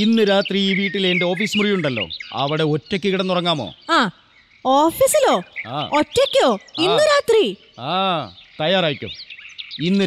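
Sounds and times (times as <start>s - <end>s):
boy and man talking: 0.0s - 3.8s, 5.0s - 9.2s, 9.8s - 10.0s
small birds chirping: 0.0s - 10.0s.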